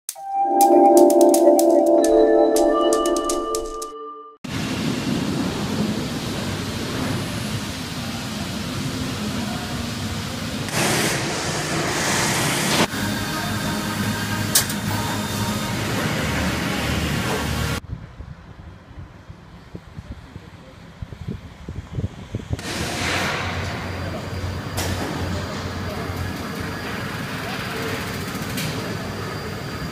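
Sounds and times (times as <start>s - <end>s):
industrial roar: 4.5s - 17.8s, 22.1s - 29.9s.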